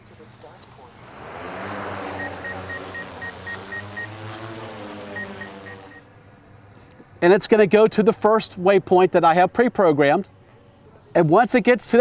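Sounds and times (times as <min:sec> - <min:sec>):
drone propellers whirring: 0:00.1 - 0:06.3
high beeps: 0:02.2 - 0:04.2.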